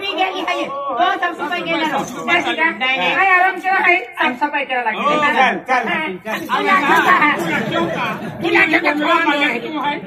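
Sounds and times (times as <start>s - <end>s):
several voices talking: 0.0s - 10.0s.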